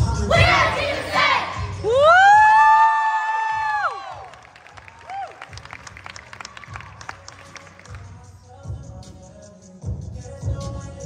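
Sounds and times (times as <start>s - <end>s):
voices shouting together: 0.2s - 1.9s.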